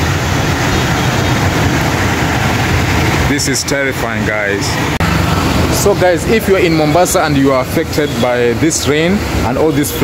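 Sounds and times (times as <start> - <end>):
floodwater rushing through channel: 0.0 - 10.0.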